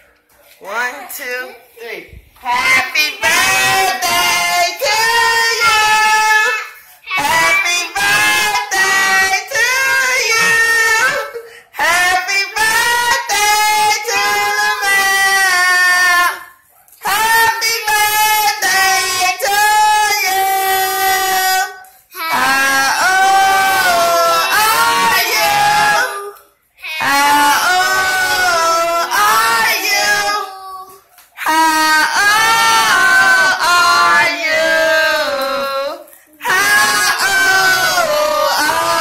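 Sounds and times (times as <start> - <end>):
child and woman singing: 2.4 - 39.0.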